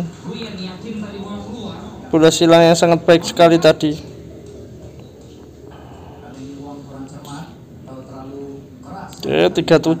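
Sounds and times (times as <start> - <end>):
faint television voices: 0.0 - 10.0
low background noise: 0.0 - 10.0.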